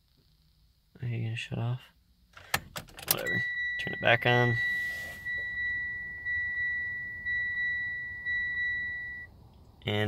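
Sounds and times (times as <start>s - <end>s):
car dashboard chime: 3.1s - 9.3s.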